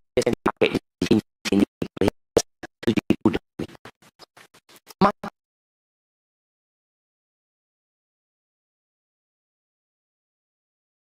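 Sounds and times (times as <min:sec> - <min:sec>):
man's voice stuttering glitches: 0:00.2 - 0:05.4.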